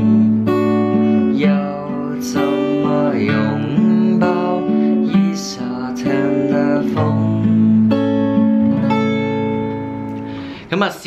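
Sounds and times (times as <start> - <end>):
fingerstyle acoustic guitar: 0.0 - 10.7.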